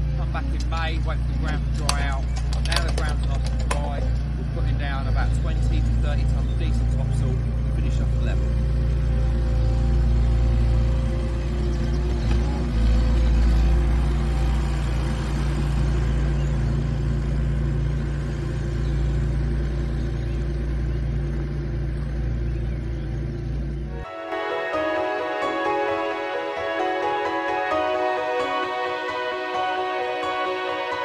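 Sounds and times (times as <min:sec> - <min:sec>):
loader engine running: 0:00.0 - 0:31.0.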